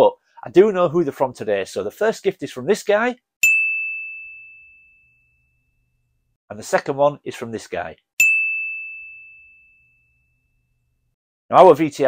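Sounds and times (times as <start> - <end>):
high pure chime: 3.4 - 6.1, 8.2 - 11.1.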